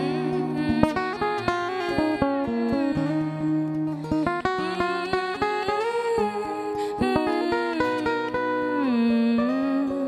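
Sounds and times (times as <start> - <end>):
fingerstyle acoustic guitar: 0.0 - 10.0.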